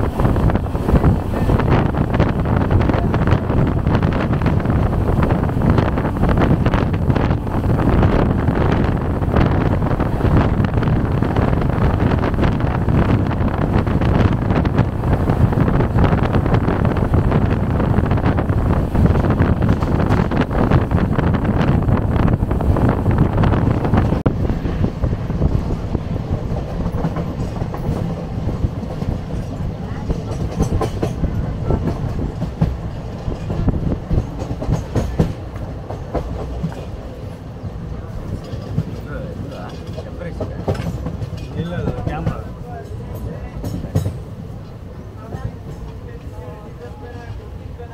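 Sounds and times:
rushing air: 0.0 - 39.0
train wheels rumbling on rails: 0.0 - 47.9
rail-joint clicks: 25.6 - 37.4, 38.0 - 46.3.

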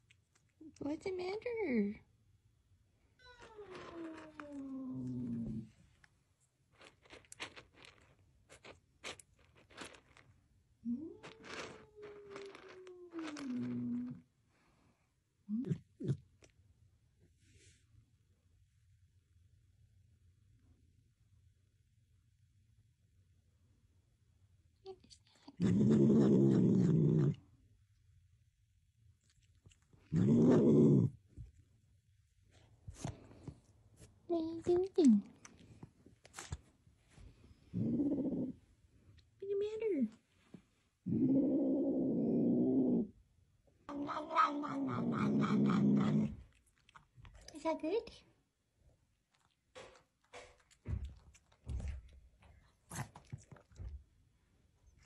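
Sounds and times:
cat growling: 3.3 - 5.8, 10.8 - 14.3, 25.6 - 27.5, 30.0 - 31.2, 37.7 - 38.7, 41.0 - 43.2, 43.9 - 47.5
dry kibble rattling in metal bowl: 6.7 - 10.4, 11.2 - 14.2.

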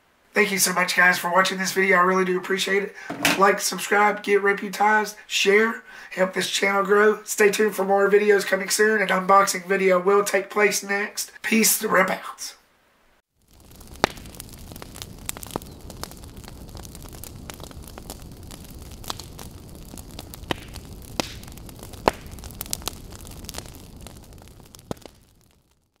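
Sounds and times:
fire crackling and popping: 13.2 - 26.0.

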